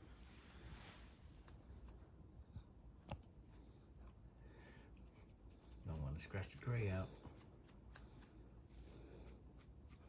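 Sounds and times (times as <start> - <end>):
comb scratching scalp: 3.1 - 10.0.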